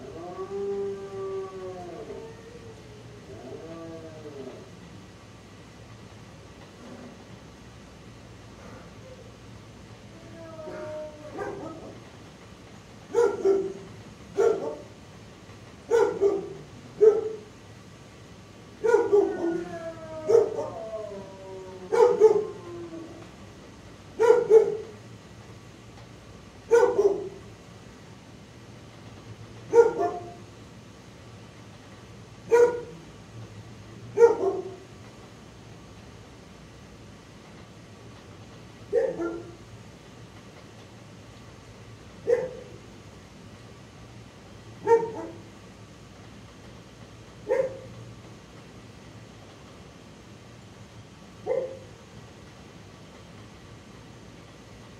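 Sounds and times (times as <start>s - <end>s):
dog barking: 11.3s - 11.9s, 13.1s - 14.9s, 15.9s - 17.4s, 18.8s - 19.5s, 20.3s - 20.8s, 21.9s - 22.4s, 24.2s - 24.9s, 26.7s - 27.4s, 29.7s - 30.4s, 32.5s - 33.0s, 34.2s - 34.8s, 38.9s - 39.6s, 42.2s - 42.7s, 44.8s - 45.4s, 47.5s - 47.9s, 51.4s - 51.9s.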